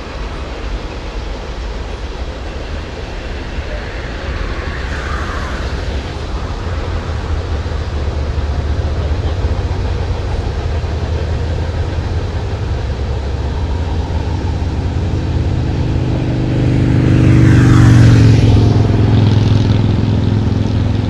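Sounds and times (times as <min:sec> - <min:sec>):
low traffic rumble: 0:00.0 - 0:21.0
car driving past: 0:03.2 - 0:08.8, 0:14.2 - 0:20.8.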